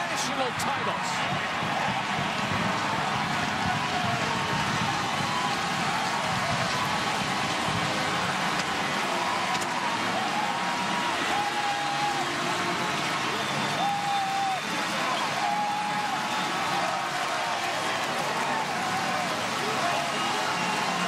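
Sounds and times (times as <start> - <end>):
stadium crowd cheering: 0.0 - 21.0.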